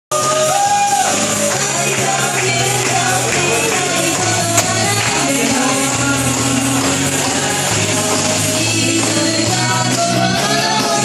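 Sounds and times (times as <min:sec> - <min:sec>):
karaoke backing music: 0:00.1 - 0:11.0.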